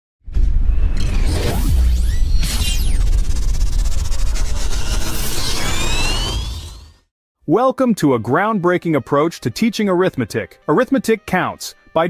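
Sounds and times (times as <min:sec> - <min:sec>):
whooshing sweeps: 0:01.0 - 0:07.0
deep low rumble: 0:02.0 - 0:06.8.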